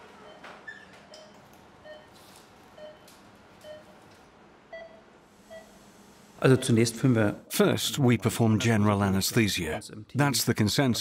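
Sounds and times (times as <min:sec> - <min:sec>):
patient monitor beeping: 0:00.0 - 0:04.0, 0:04.7 - 0:05.8.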